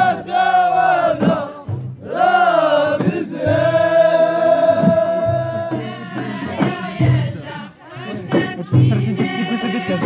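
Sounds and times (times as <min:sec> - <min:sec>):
group of voices chanting: 0:00.0 - 0:10.0.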